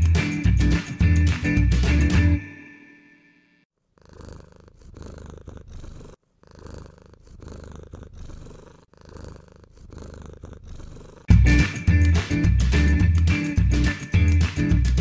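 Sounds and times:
cat purring: 0:03.8 - 0:11.3
loud background music: 0:11.3 - 0:15.0.

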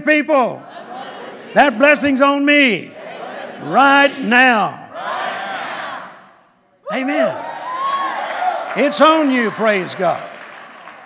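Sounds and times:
congregation calling out and cheering: 0:00.0 - 0:11.0.

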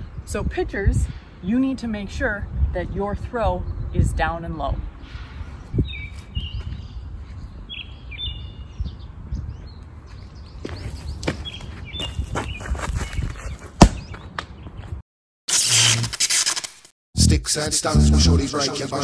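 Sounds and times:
wind: 0:00.0 - 0:16.9
birds chirping: 0:05.4 - 0:15.0
scuffs: 0:10.1 - 0:14.2.

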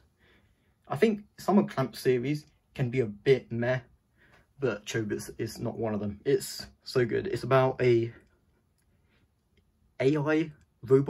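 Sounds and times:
person speaking: 0:04.6 - 0:08.3, 0:09.9 - 0:11.0.

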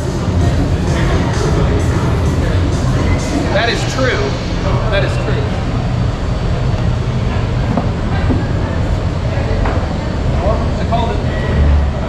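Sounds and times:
faint crowd voices: 0:00.0 - 0:12.0
low rumble of busy venue: 0:00.0 - 0:12.0.

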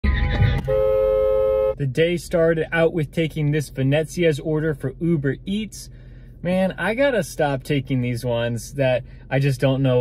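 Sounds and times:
car horn two-tone blast: 0:00.4 - 0:01.8.

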